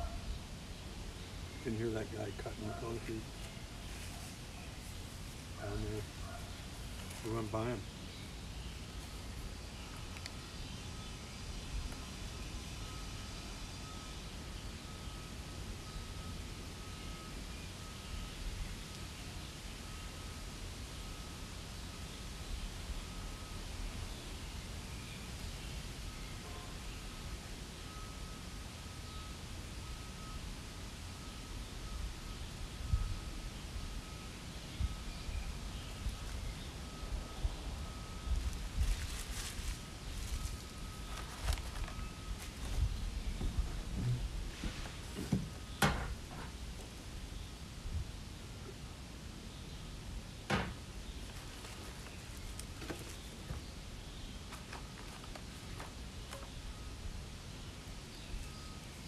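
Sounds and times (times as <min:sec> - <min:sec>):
rustles and knocks: 0:38.8 - 0:46.6, 0:50.5 - 0:53.6.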